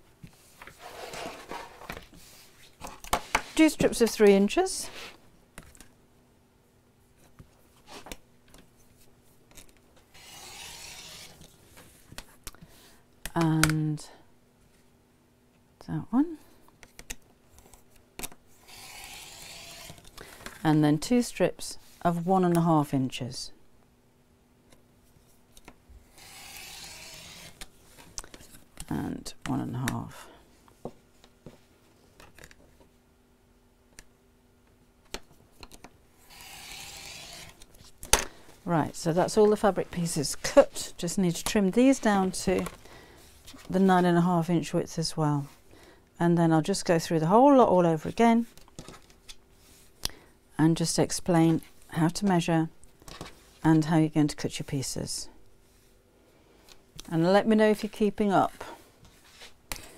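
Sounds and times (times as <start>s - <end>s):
rotary cutter slicing fabric: 10.1s - 11.4s, 18.6s - 20.0s, 26.1s - 27.6s, 36.2s - 37.6s.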